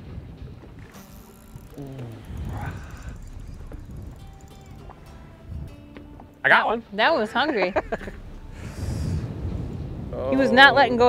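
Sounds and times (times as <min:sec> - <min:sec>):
faint background music: 0:00.0 - 0:11.0
wind rumbling on microphone: 0:00.0 - 0:11.0.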